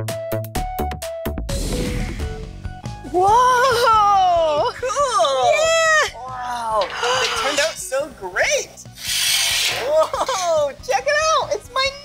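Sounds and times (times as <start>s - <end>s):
sheet metal scraping: 6.6s - 8.2s, 9.0s - 10.0s.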